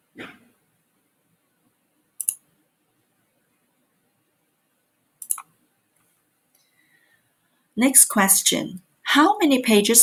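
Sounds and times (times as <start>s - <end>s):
computer mouse clicks: 2.2s - 2.5s, 5.2s - 6.7s.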